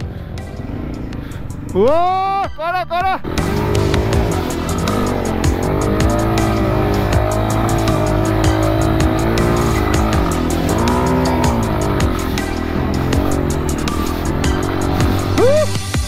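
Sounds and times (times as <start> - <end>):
dirt bike engine revving: 0.0 - 2.0, 3.2 - 16.0
background music with beat: 3.3 - 16.0.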